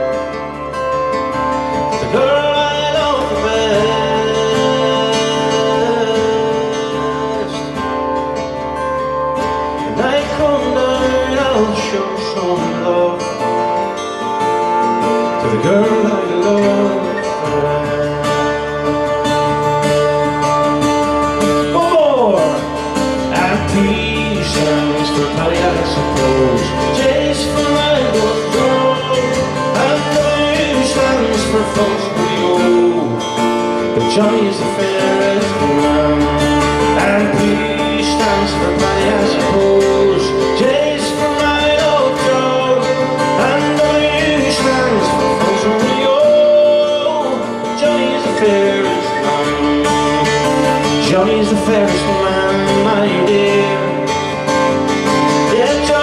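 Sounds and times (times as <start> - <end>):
acoustic guitars playing: 0.0 - 56.0
man singing: 0.0 - 56.0.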